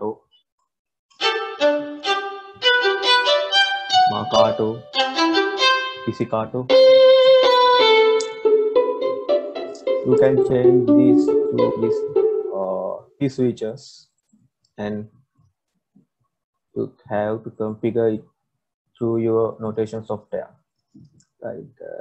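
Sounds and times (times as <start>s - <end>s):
sampled solo violin notes: 1.1s - 13.0s.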